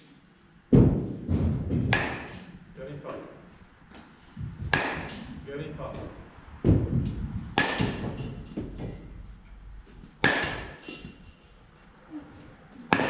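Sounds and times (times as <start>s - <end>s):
bat cracking baseball: 4.7s - 5.3s, 7.5s - 8.3s, 10.2s - 10.8s.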